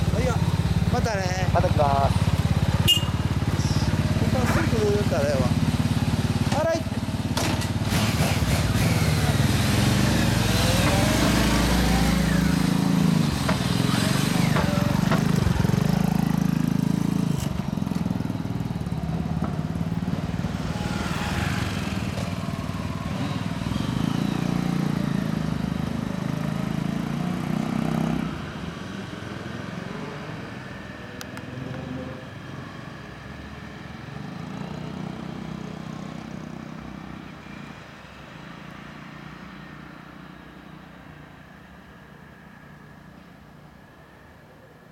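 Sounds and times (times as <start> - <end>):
motorcycle engines revving: 0.0 - 33.2.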